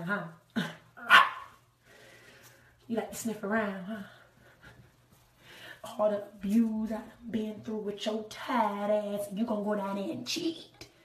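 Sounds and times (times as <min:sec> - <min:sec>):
woman imitating dog bark: 0:01.0 - 0:01.5.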